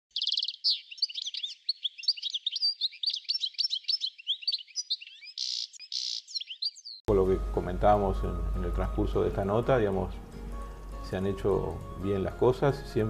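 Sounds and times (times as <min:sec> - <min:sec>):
songbirds chirping and twittering: 0:00.1 - 0:07.1.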